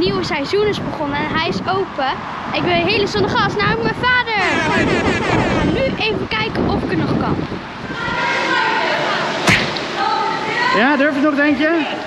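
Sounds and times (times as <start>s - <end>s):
sharp whip-like crack: 9.4s - 9.9s.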